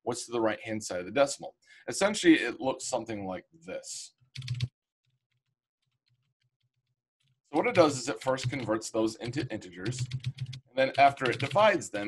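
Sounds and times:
faint keyboard typing: 0:04.4 - 0:04.7, 0:07.2 - 0:11.8.

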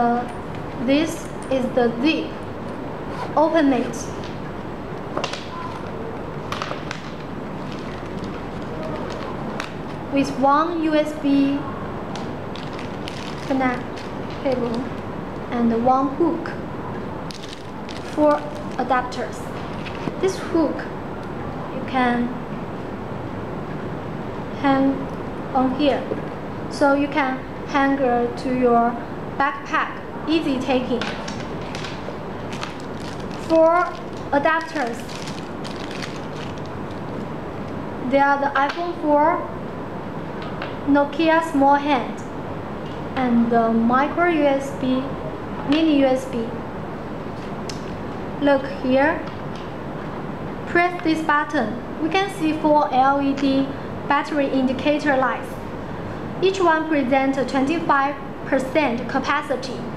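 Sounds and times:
case clicks and rustles: 0:31.2 - 0:37.1.

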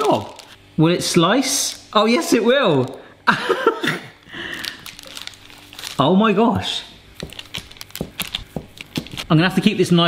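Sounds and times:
knife cutting fudge on plastic board: 0:07.2 - 0:09.3.

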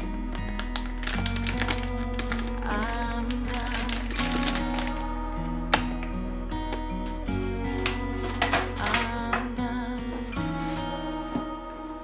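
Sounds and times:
plastic bag crinkling: 0:00.0 - 0:06.1, 0:07.7 - 0:09.2
background music: 0:00.0 - 0:12.0.

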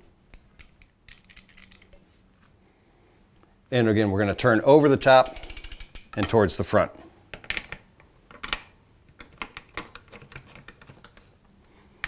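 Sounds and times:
light clicks and clinks: 0:00.3 - 0:02.1.

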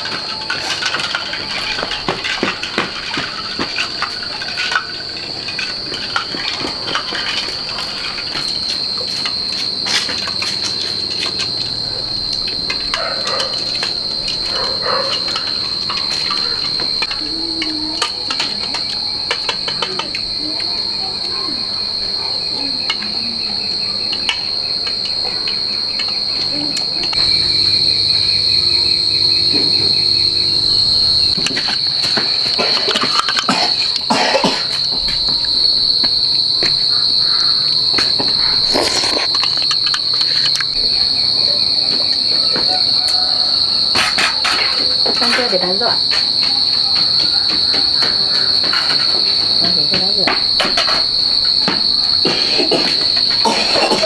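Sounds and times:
scattered clicks and knocks: 0:00.0 - 0:20.3, 0:24.1 - 0:36.8, 0:43.9 - 0:54.0
insect chorus drone: 0:00.0 - 0:54.0.

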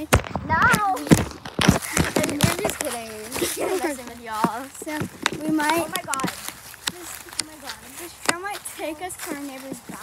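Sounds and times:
footsteps on dry leaves: 0:00.0 - 0:10.0
young people talking: 0:00.0 - 0:10.0.

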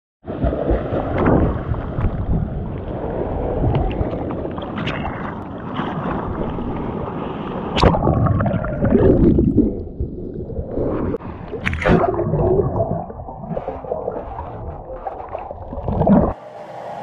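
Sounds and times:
wind rumble on microphone: 0:00.6 - 0:07.1
water sloshing: 0:03.5 - 0:16.4.

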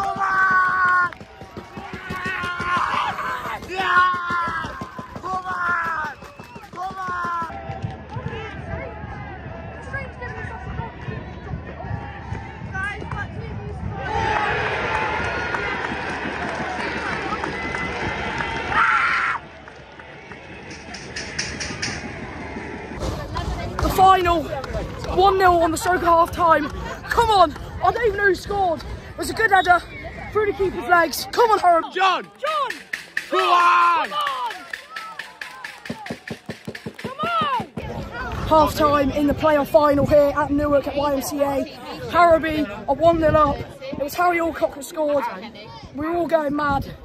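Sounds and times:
crowd shouting: 0:00.0 - 0:11.0, 0:29.6 - 0:38.3
rhythmic clapping: 0:32.4 - 0:37.8.

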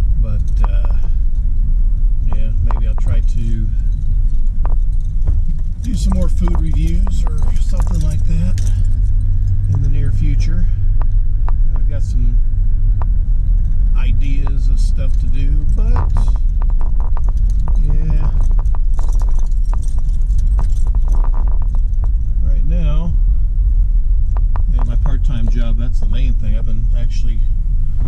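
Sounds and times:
engine and road rumble: 0:00.0 - 0:28.0
person speaking: 0:00.2 - 0:01.2, 0:02.3 - 0:03.9, 0:05.8 - 0:08.8, 0:09.7 - 0:10.8, 0:11.8 - 0:12.4, 0:14.0 - 0:16.4, 0:17.7 - 0:18.5, 0:22.4 - 0:23.2, 0:24.6 - 0:27.6
small rattling clicks: 0:03.8 - 0:10.0, 0:15.2 - 0:22.3.

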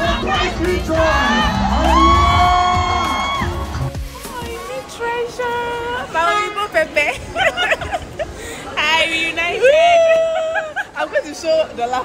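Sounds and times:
crowd singing along: 0:00.0 - 0:02.7
loud music: 0:00.0 - 0:04.6
crowd cheering: 0:00.0 - 0:04.8.

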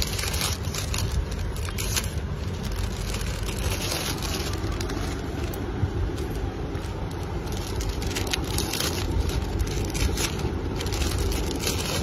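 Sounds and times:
low rumble: 0:00.0 - 0:12.0
plastic bags crinkling: 0:00.0 - 0:12.0.

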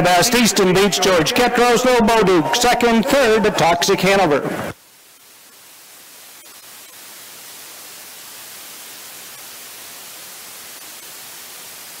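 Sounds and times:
static hiss: 0:00.0 - 0:12.0.

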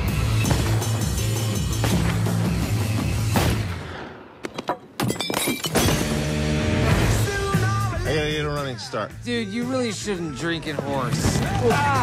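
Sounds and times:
trailer music with steady beat: 0:00.0 - 0:04.4, 0:05.9 - 0:12.0
glass shattering: 0:05.0 - 0:06.2.

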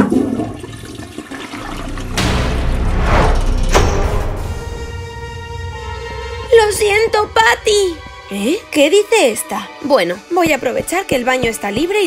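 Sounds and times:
toilet flushing: 0:00.0 - 0:02.2.

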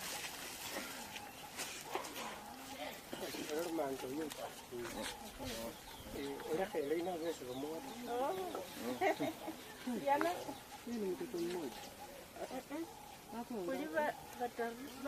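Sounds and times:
indistinct background voices: 0:00.6 - 0:15.0.

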